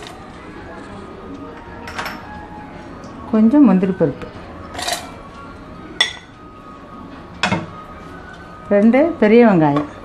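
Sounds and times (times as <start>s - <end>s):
kitchenware clink: 4.8s - 5.2s, 6.0s - 6.3s.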